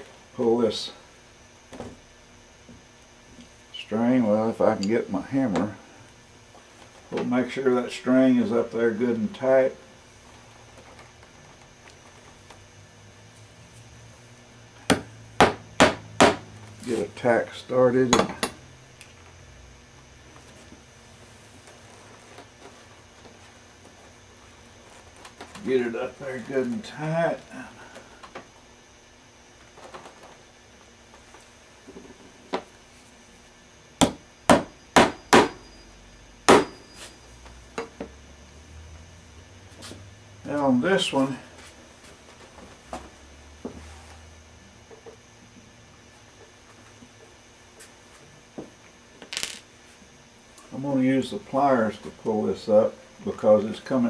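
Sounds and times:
hammer striking tacks: 14.9 - 16.4, 34.0 - 35.6, 36.5 - 36.8.

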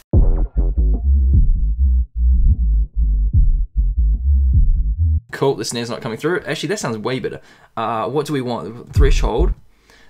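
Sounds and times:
muffled sub-bass and kick drums: 0.1 - 5.2, 9.0 - 9.6.

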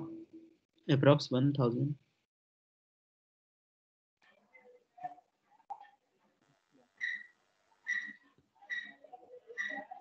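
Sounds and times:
faint high chirps: 7.0 - 10.0.

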